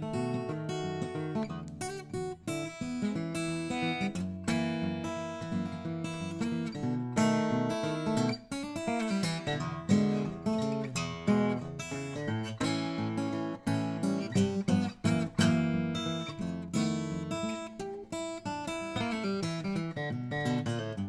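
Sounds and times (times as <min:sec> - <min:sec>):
fingerstyle acoustic guitar: 0:00.0 - 0:21.0.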